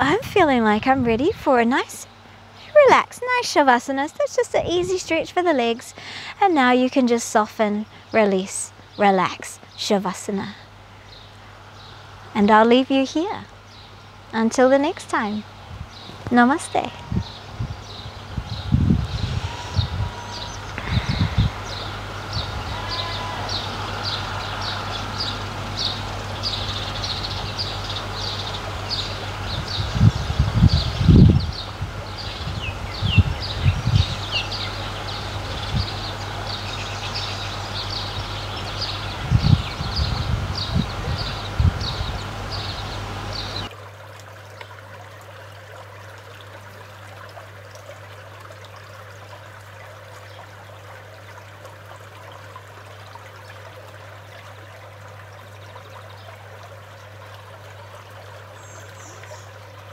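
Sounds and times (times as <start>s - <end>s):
wind buffeting microphone: 0.0s - 2.1s, 15.6s - 24.8s, 27.0s - 36.6s, 37.6s - 43.7s
birds chirping: 0.0s - 43.7s
stream trickling: 0.0s - 59.9s.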